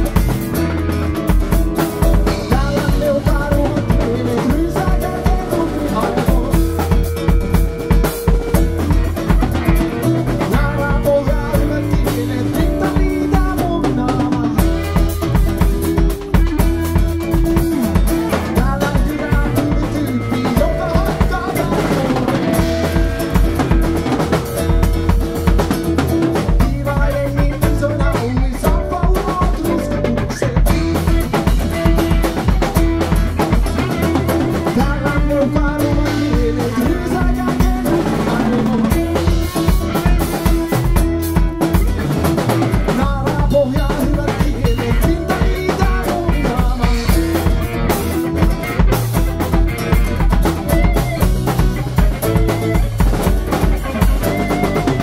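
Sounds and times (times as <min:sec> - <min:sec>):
double bass: 0:00.0 - 0:55.0
drum kit with rimshots: 0:00.0 - 0:55.0
guitars: 0:00.0 - 0:55.0.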